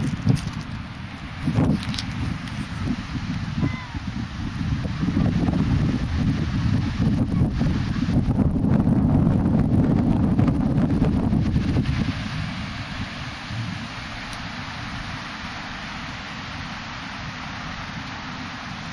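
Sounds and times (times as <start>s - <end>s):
wind buffeting microphone: 0.0s - 18.9s
small waves breaking: 10.9s - 18.9s.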